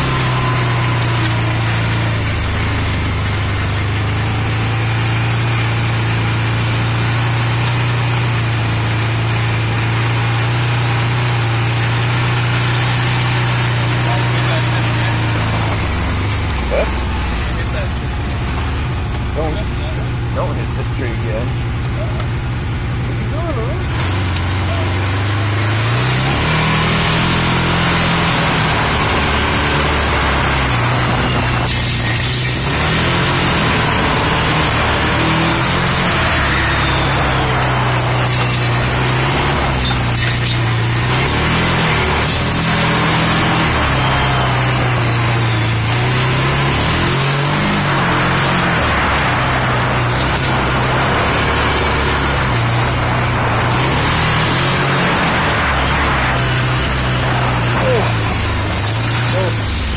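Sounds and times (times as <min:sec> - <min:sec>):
utility vehicle engine revving: 0:00.0 - 0:59.9.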